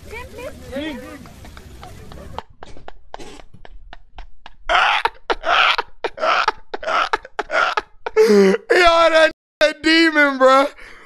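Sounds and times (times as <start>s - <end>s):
man laughing hard: 4.2s - 9.3s.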